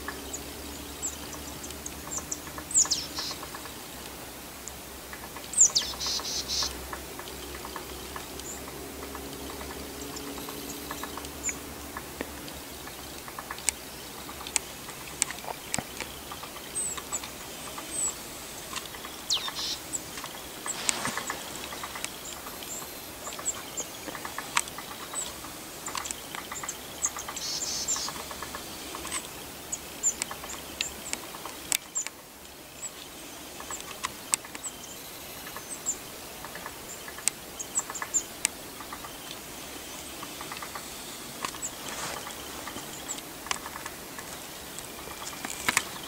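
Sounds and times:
small birds chirping: 0:00.0 - 0:46.0
steady hiss: 0:00.0 - 0:46.0
sharp clicks and crackles: 0:06.6 - 0:29.3, 0:30.0 - 0:32.2, 0:40.2 - 0:46.0.

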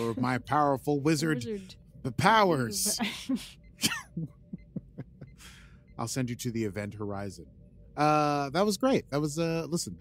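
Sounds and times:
person chuckling softly: 0:03.8 - 0:05.6
person drawing breath: 0:05.4 - 0:05.9.

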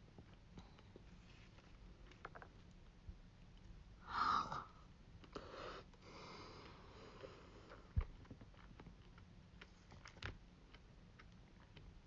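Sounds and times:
sniff through the nose: 0:05.4 - 0:07.8.

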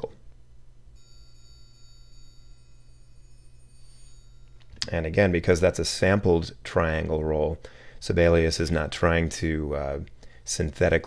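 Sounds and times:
triangle roll: 0:01.0 - 0:05.6
triangle strikes: 0:01.0 - 0:06.1.

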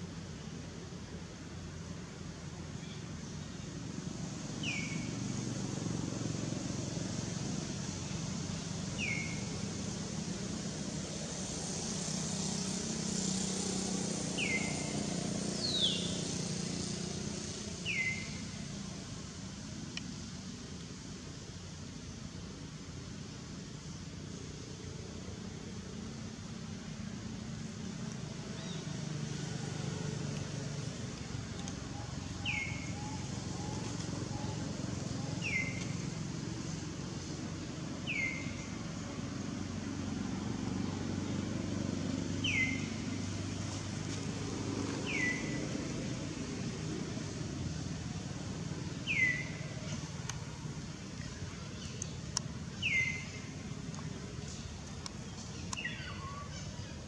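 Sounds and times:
bird chirping: 0:31.9 - 0:34.6, 0:35.2 - 0:36.0, 0:51.2 - 0:57.0.

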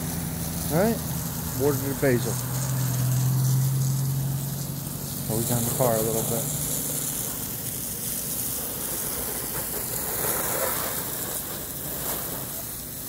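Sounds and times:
hose water spraying on car: 0:00.0 - 0:13.0.

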